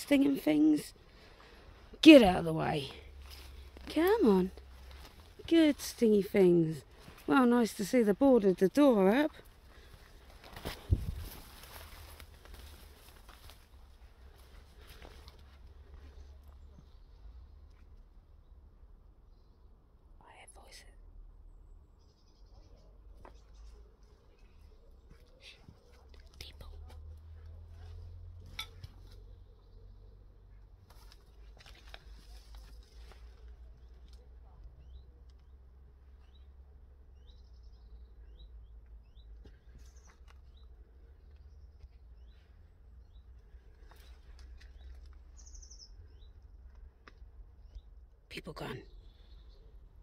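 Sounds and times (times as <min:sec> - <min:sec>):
light clicks and rustles: 0:30.8 - 0:35.5
faint high bird chirps: 0:43.9 - 0:46.4.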